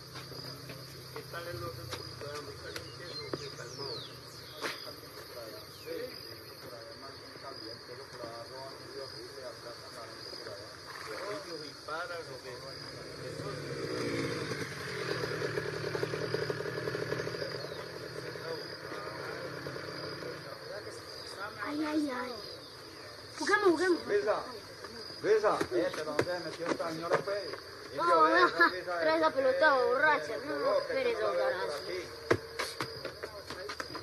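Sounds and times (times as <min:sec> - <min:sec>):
high insect drone: 0:00.0 - 0:34.0
small engine buzz: 0:13.1 - 0:20.3.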